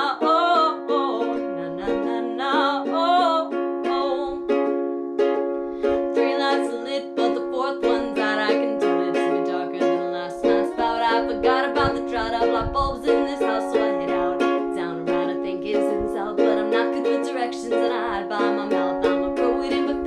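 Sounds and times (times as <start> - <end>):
person singing: 0.0 - 20.0
ukulele strumming chords: 0.0 - 20.0.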